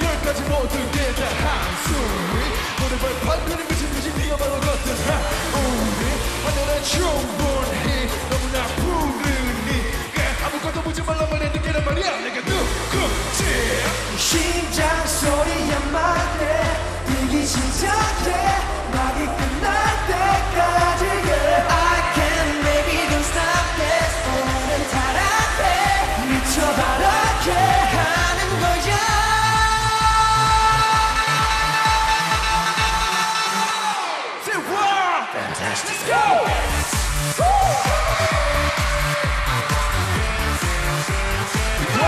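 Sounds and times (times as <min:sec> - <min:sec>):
pulsing bass beat: 0:00.0 - 0:33.4, 0:36.5 - 0:42.0
male vocals: 0:00.0 - 0:39.4, 0:41.5 - 0:42.0.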